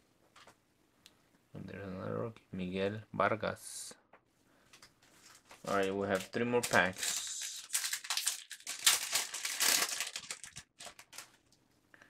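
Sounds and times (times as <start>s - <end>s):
plastic wrapper tearing and crinkling: 5.2s - 11.6s.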